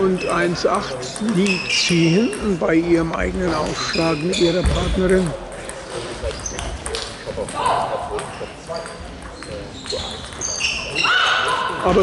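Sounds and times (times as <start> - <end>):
table tennis balls clicking: 0.0 - 3.8, 5.1 - 12.0
voices in a hall: 0.0 - 12.0.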